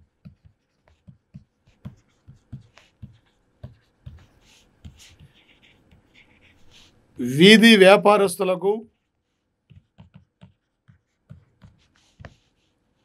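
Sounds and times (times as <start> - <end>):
pen writing on paper: 0.2 - 6.9, 9.0 - 13.0.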